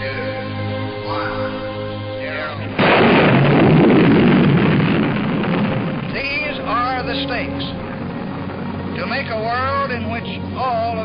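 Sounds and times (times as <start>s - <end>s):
bomb explosion rumble: 2.8s - 10.0s.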